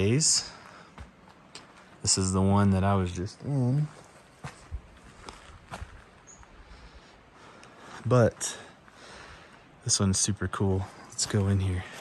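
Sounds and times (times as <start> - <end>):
footsteps on dirt and grass: 0.0 - 2.4, 3.5 - 6.6, 10.8 - 12.0.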